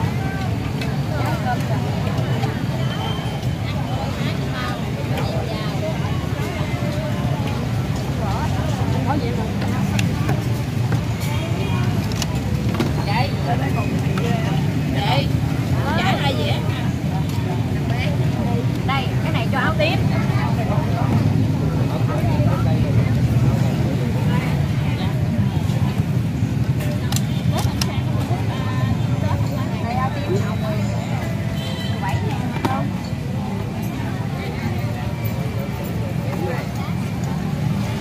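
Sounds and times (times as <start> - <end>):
people talking: 0.0 - 38.0.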